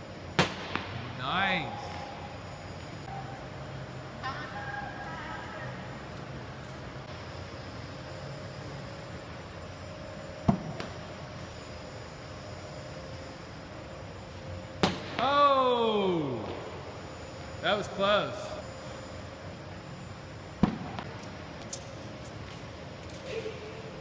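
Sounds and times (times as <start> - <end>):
low hum in echoing hall: 0.0 - 24.0.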